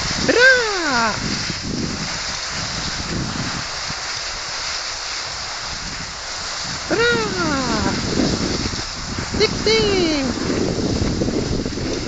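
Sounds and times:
skis gliding over snow: 0.0s - 12.0s
wind on microphone: 0.0s - 12.0s.

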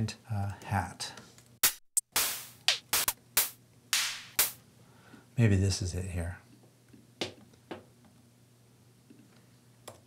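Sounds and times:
closed hi-hat hits: 1.6s - 4.6s.

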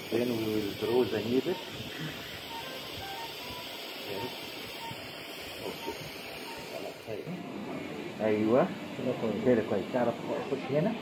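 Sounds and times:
soft electronic beeps: 0.8s - 7.0s.

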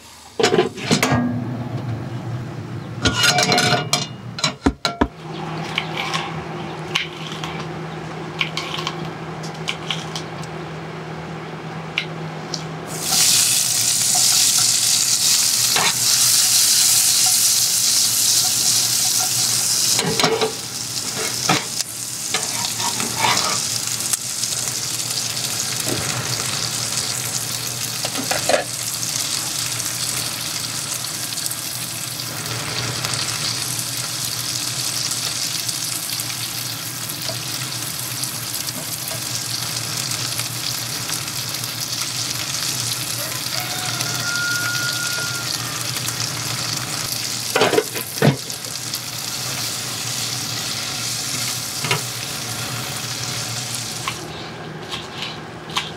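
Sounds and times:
spatula knocking and scraping pans: 0.4s - 1.6s, 3.0s - 7.7s, 20.0s - 23.7s, 28.0s - 28.7s
vegetables sizzling in skillet: 12.9s - 54.4s
chicken frying in pans: 12.9s - 55.9s.

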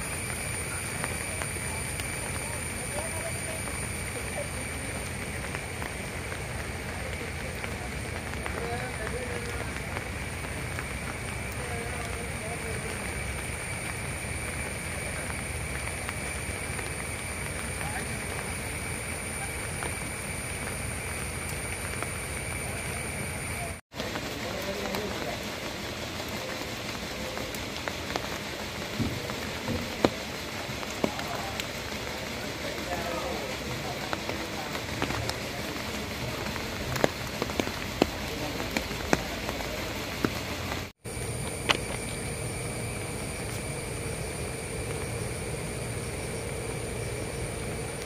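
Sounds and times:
heavy rain: 0.0s - 48.0s
rain drop ticks: 0.0s - 48.0s.

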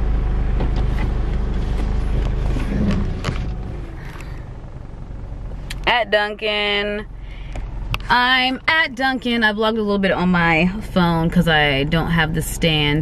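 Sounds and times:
car engine hum from inside cabin: 0.0s - 13.0s.

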